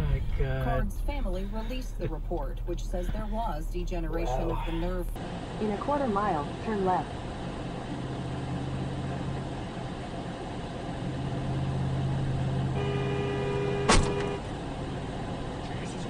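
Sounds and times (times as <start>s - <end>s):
vehicle driving drone: 0.0s - 16.0s
car horn: 12.6s - 14.5s.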